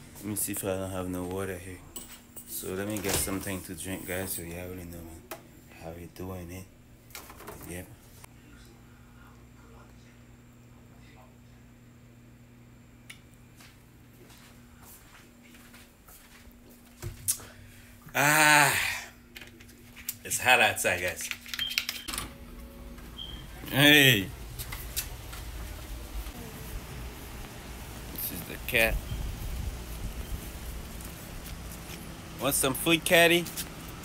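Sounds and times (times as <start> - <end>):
steady low hum: 22.1 - 34.0
even hiss: 25.8 - 33.7.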